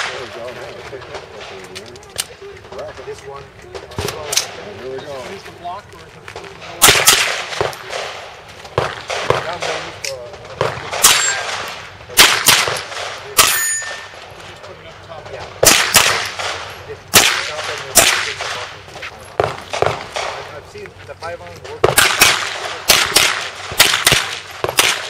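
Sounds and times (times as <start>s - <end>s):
rifle shots: 6.8s - 14.4s, 15.6s - 18.8s, 19.4s - 20.6s, 21.8s - 25.0s
steel target ringing clang: 11.0s - 11.6s, 13.4s - 14.2s.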